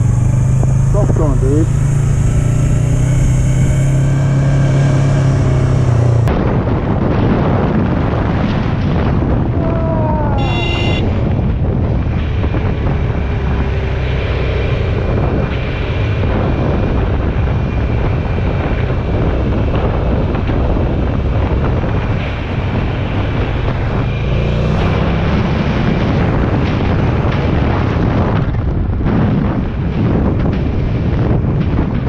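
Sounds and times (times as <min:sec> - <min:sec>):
motorcycle engine rumble: 0:00.0 - 0:32.0
wind buffeting microphone: 0:00.0 - 0:32.0.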